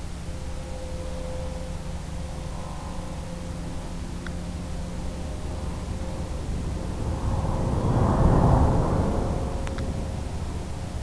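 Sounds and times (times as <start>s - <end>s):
faint constant tone: 0.0s - 11.0s
low buzzing hum: 0.0s - 11.0s
steady hiss: 0.0s - 11.0s.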